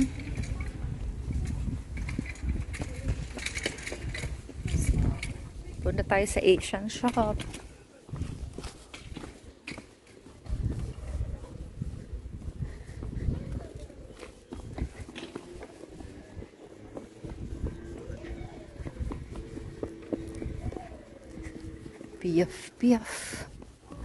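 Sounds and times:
low rumbling on microphone: 0:00.0 - 0:06.6, 0:10.4 - 0:24.0
faint voices: 0:00.0 - 0:24.0
footsteps on stone paving: 0:00.0 - 0:24.0
children running: 0:06.1 - 0:24.0.

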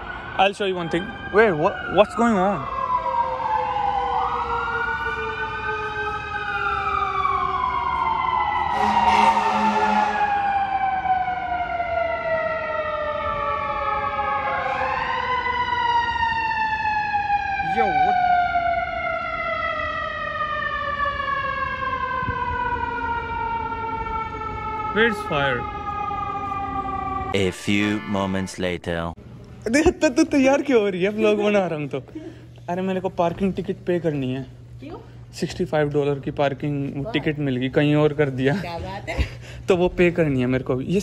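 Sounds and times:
emergency vehicle siren: 0:00.0 - 0:28.9.

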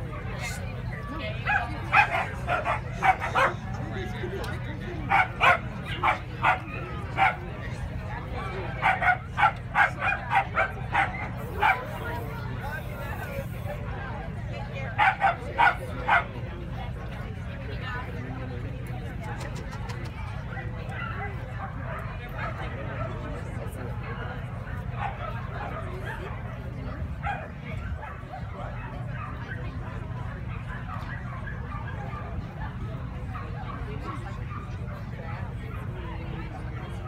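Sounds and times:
dog barking: 0:01.5 - 0:03.6, 0:05.1 - 0:07.4, 0:08.8 - 0:11.9, 0:15.0 - 0:16.3, 0:27.2 - 0:29.4.

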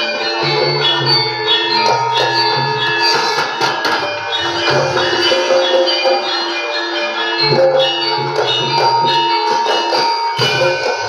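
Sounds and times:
gamelan music: 0:00.0 - 0:11.0
sharp percussion strokes: 0:00.0 - 0:11.0.

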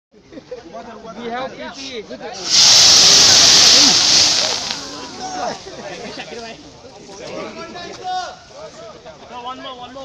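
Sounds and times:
fireball hissing rush: 0:02.4 - 0:05.7.

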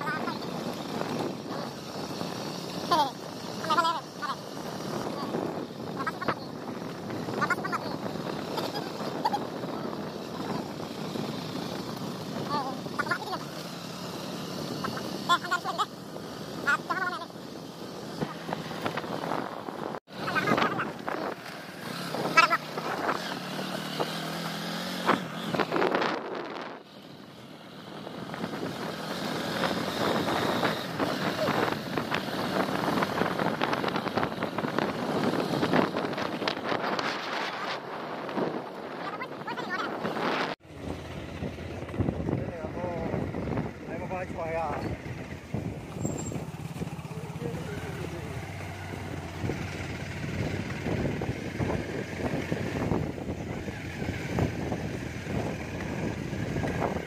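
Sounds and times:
motorcycle engine running: 0:00.0 - 0:57.0
wind rushing over microphone: 0:00.0 - 0:57.0.

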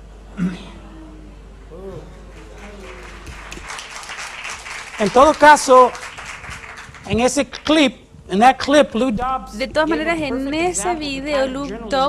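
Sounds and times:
audience applause: 0:02.2 - 0:07.5.

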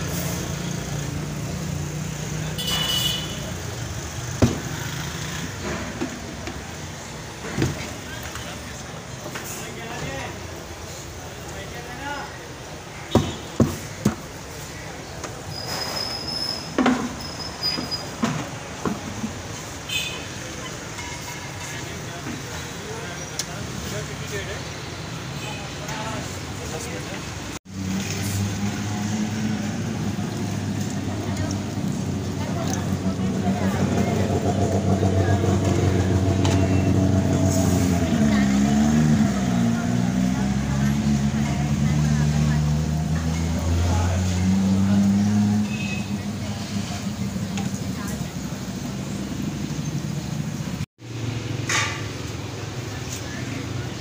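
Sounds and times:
street traffic: 0:00.0 - 0:54.0.

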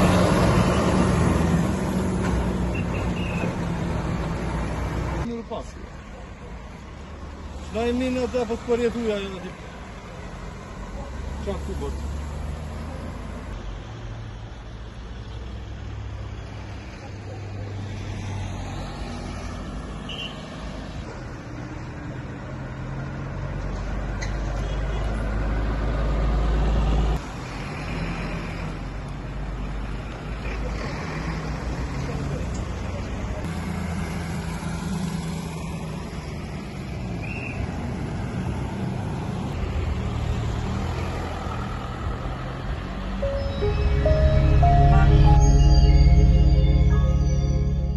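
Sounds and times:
highway traffic rumble: 0:00.0 - 0:47.9.

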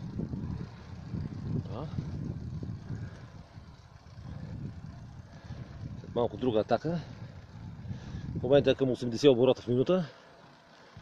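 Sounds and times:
wind rumble on microphone: 0:00.0 - 0:09.2
bicycle tyres on asphalt: 0:00.0 - 0:11.0.

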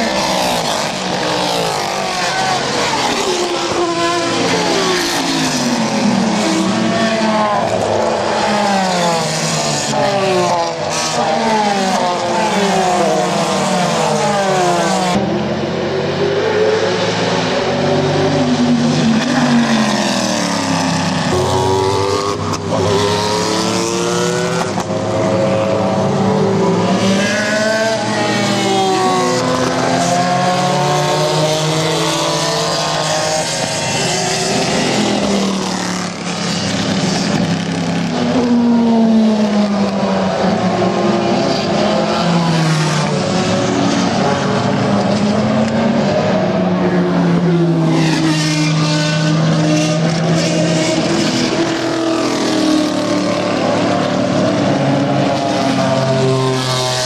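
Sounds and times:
race cars passing at speed: 0:00.0 - 0:57.0.

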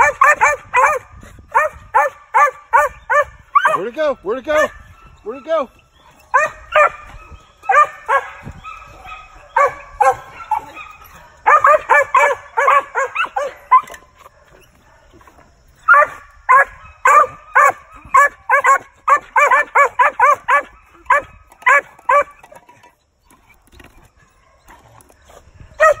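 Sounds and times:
dog barking: 0:00.0 - 0:03.9, 0:06.2 - 0:15.2, 0:15.9 - 0:22.4, 0:25.8 - 0:26.0.

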